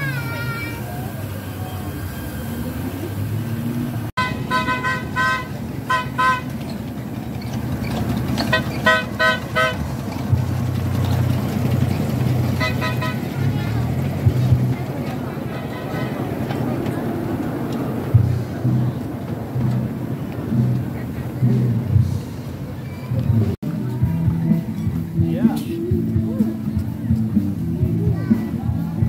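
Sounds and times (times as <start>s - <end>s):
crowd voices: 0.0s - 29.0s
small train horn toots: 4.2s - 6.6s, 8.4s - 9.9s, 12.5s - 13.4s, 15.4s - 16.5s.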